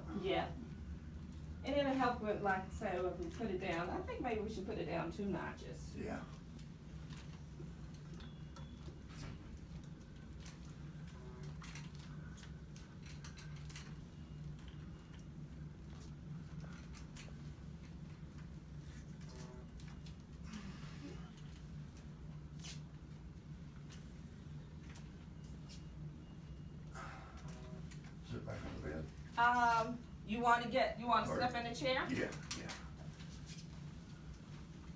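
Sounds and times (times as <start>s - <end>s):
low room hum: 0.0s - 34.9s.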